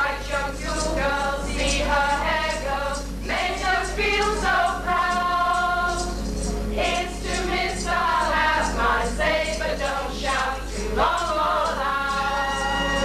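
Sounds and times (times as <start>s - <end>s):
choir singing: 0.0s - 13.0s
steady low hum: 0.0s - 13.0s.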